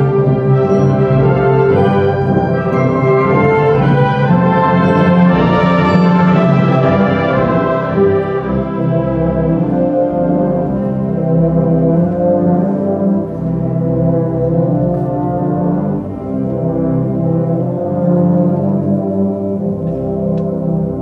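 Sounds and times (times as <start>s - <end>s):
concert wind band playing: 0.0s - 21.0s.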